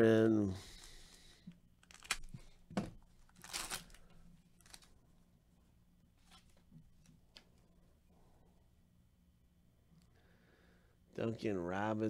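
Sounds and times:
faint clicks of cards handled: 0:00.7 - 0:05.0, 0:06.2 - 0:07.7
foil wrapper tearing: 0:01.8 - 0:02.3, 0:03.3 - 0:04.9.

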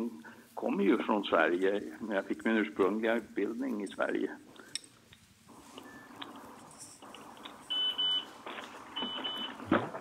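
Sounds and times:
telephone double beep ringing: 0:07.7 - 0:08.3, 0:09.0 - 0:09.6.

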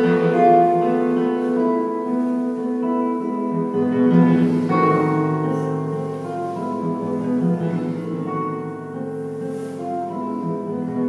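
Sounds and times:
classical guitar plucked notes: 0:00.0 - 0:11.0.

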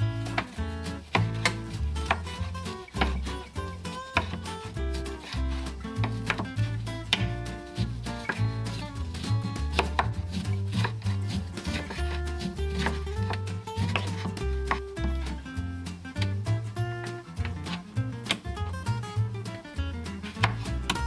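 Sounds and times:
knife slicing citrus fruit: 0:00.0 - 0:15.4, 0:17.4 - 0:18.5, 0:20.2 - 0:21.0
background music: 0:00.0 - 0:21.0.

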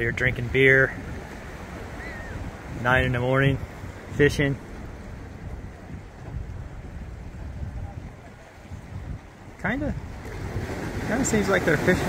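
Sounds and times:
sea washing against rocks: 0:00.0 - 0:12.0
wind rumbling on microphone: 0:00.0 - 0:12.0.

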